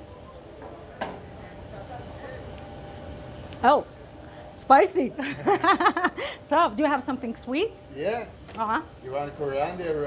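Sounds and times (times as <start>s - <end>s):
faint indistinct voices: 0.0s - 4.6s
low background hum: 0.0s - 10.0s.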